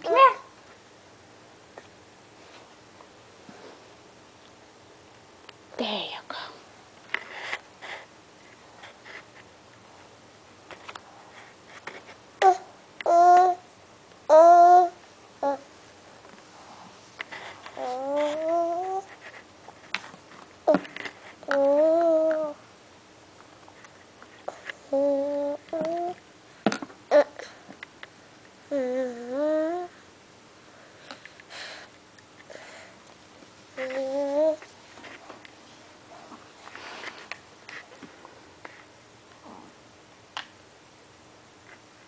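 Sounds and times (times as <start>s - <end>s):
toddler humming: 12.4s - 13.6s, 14.3s - 15.7s, 17.8s - 19.1s, 21.4s - 22.6s, 24.8s - 26.2s, 27.1s - 27.5s, 28.7s - 30.0s, 33.8s - 34.6s.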